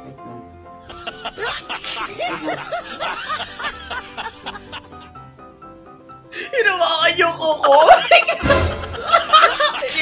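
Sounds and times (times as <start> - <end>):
background music: 0.0 - 10.0
person laughing: 0.9 - 5.0, 7.6 - 10.0.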